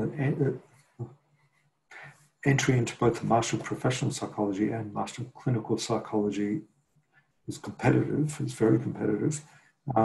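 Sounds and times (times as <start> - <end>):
man saying uh: 0.0 - 0.6, 2.0 - 6.6, 7.5 - 10.0.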